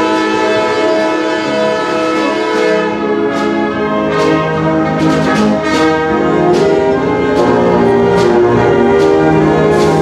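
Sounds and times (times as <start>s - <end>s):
concert band playing chords: 0.0s - 10.0s.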